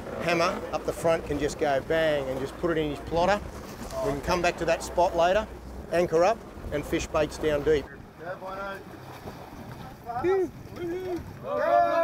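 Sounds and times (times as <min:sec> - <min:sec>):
sea noise: 0:00.0 - 0:12.0
wind: 0:00.0 - 0:12.0.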